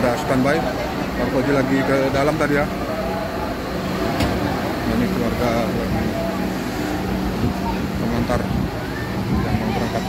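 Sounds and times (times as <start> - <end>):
bus engine idling: 0.0 - 10.0
people talking: 0.0 - 10.0.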